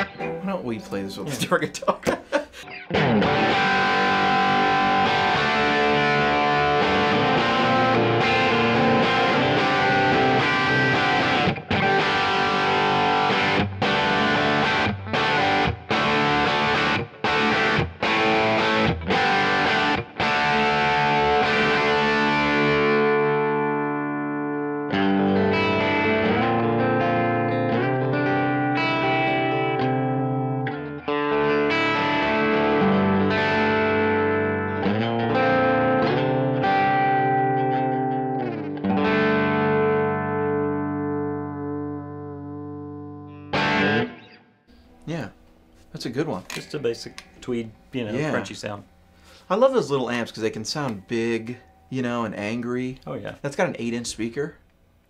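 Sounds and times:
overdriven electric guitar: 0.0s - 0.5s, 2.1s - 49.4s.

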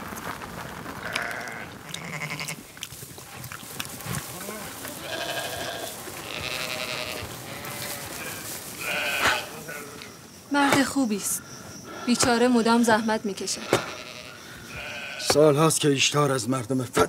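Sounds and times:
sheep and goats bleating: 1.0s - 2.8s, 4.0s - 10.2s, 12.2s - 15.4s.

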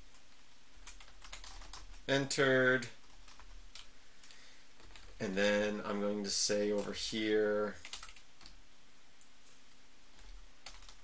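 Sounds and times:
faint keyboard keystrokes: 10.2s - 11.0s.

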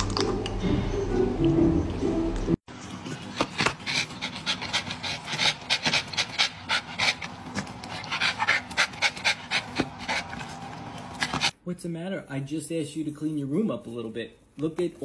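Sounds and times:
dog panting hard: 3.2s - 11.5s.

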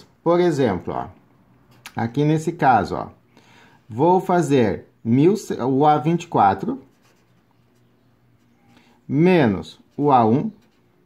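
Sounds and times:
low steady hum: 0.0s - 11.0s
felt-tip pen scratching on paper: 6.8s - 8.7s.

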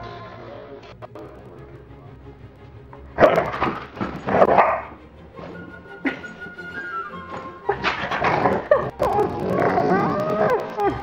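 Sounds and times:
background music: 0.0s - 11.0s
dog barking loudly: 4.4s - 5.0s.

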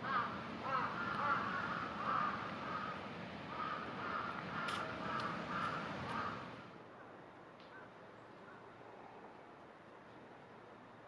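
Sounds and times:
crow cawing: 0.0s - 6.4s.

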